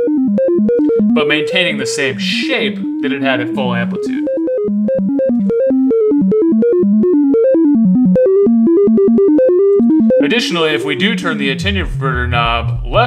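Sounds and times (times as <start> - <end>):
synthesizer random pitch notes: 0.0 - 13.0.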